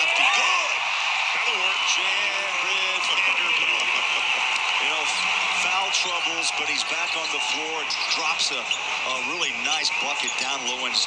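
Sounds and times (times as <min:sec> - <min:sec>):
crowd cheering and chattering: 0:00.0 - 0:11.0.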